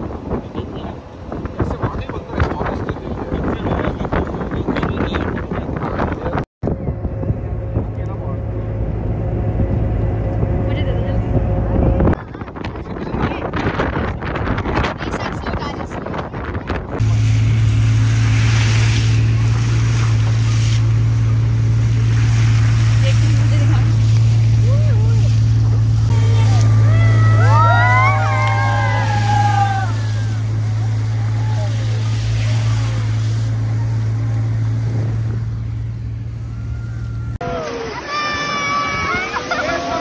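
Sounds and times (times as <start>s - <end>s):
jeep engine drone: 6.6s - 12.2s, 16.9s - 38.0s
people whooping and calling out: 26.1s - 32.0s, 36.4s - 40.0s.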